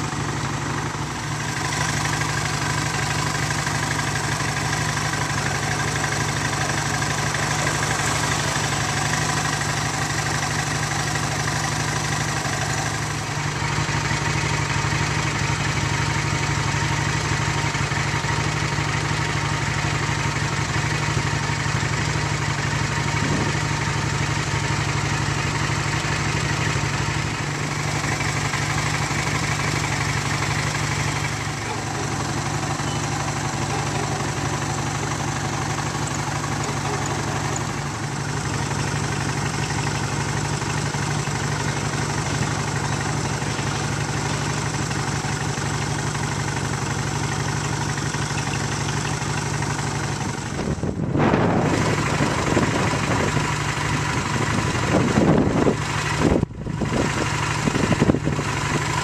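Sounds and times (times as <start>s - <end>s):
vehicle engine idling: 0.0s - 59.0s.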